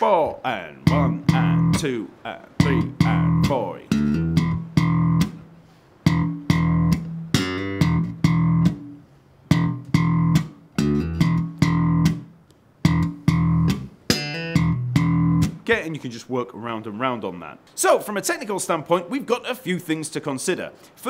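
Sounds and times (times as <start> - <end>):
slap bass guitar riff: 0.0 - 15.9.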